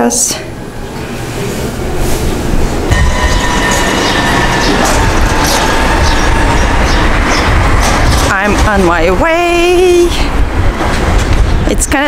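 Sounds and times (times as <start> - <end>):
steady whine: 0.6 - 12.0
vehicles rumbling past: 0.8 - 12.0.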